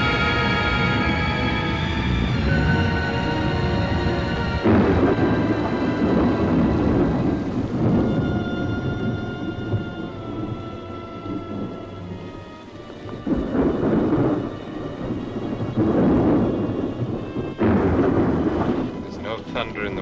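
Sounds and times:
film background score: 0.0s - 20.0s
thunder rolling and cracking: 0.0s - 20.0s.

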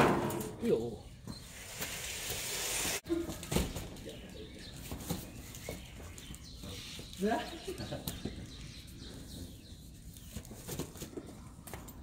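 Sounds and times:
quiet street ambience: 0.6s - 12.0s.

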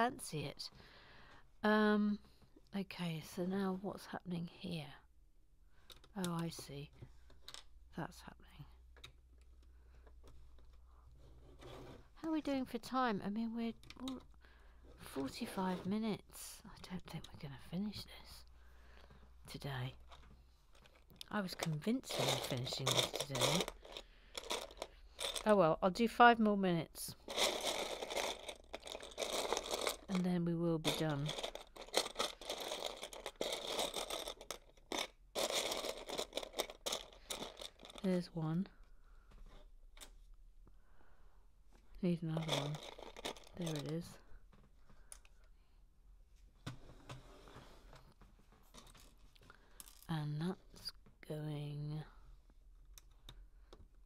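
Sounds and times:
plastic bricks rustling and clicking: 20.1s - 25.6s, 27.2s - 38.2s, 42.4s - 44.2s.

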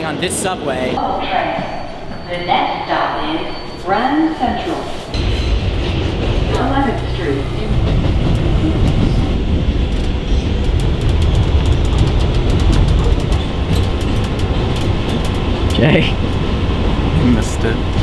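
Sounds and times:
subway train low rumble: 0.0s - 18.0s
wheels clicking and rattling: 7.8s - 16.6s.

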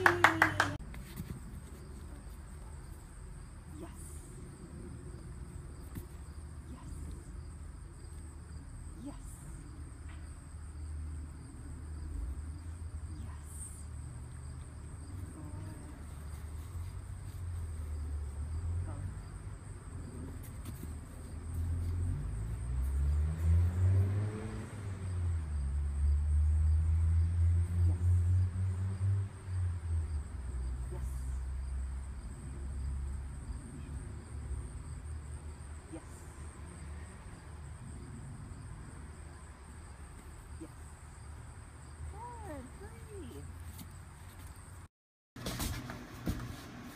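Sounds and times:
low outdoor rumble: 0.0s - 46.9s
vehicle passing: 9.2s - 44.7s.

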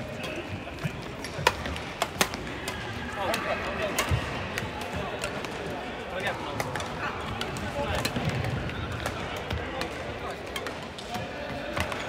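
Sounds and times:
murmuring voices in hall: 0.0s - 12.0s.

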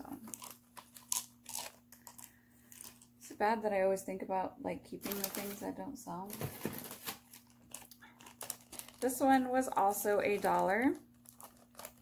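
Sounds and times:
small bag crinkling: 0.0s - 3.2s, 5.0s - 12.0s.

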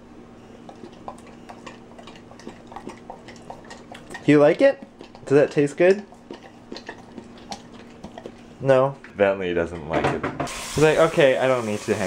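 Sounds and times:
dog lapping from bowl: 0.6s - 8.6s.

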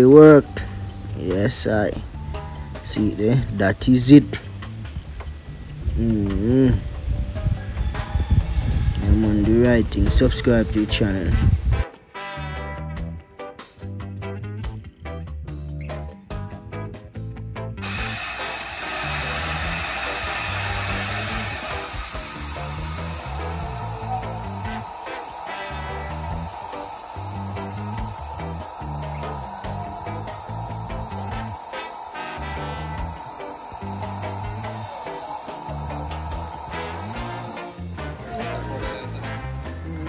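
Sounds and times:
background music with bass line: 0.0s - 40.0s
blender running: 17.8s - 37.9s.

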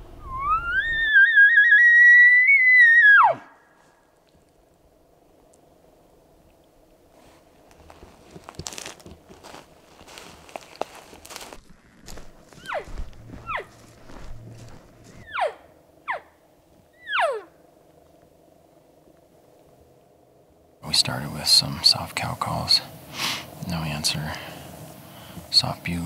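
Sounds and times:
footsteps in forest litter: 7.1s - 15.4s
elk call mews: 17.0s - 17.5s.

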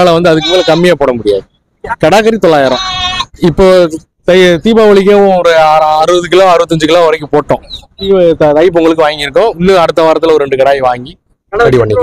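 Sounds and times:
young goats bleating: 0.1s - 1.0s, 2.5s - 3.4s.

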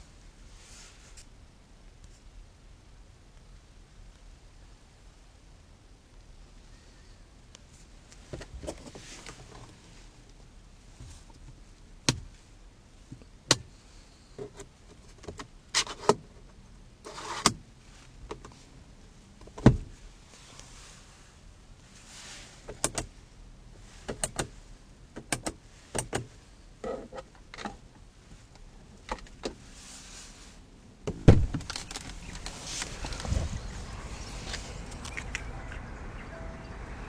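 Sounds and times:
faint steady hiss: 0.0s - 37.0s
interior trim rustling: 23.8s - 35.8s.

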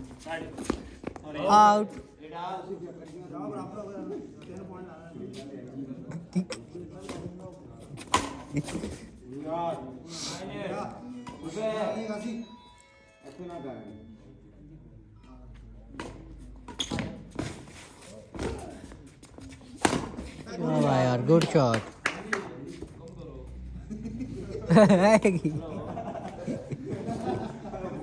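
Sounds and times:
racquets striking shuttlecock: 8.0s - 8.5s, 19.7s - 20.3s
men talking and calling out: 20.3s - 28.0s.

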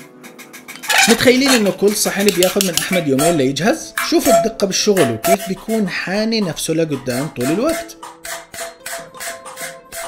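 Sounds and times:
background music: 0.0s - 10.0s
hammer tapping metal chasing tool: 0.7s - 3.4s, 4.0s - 5.8s, 6.4s - 10.0s.

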